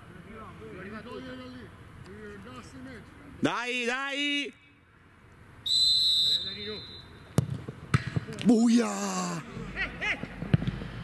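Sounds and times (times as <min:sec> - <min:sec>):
referee's whistle blast: 0:05.6 - 0:07.2.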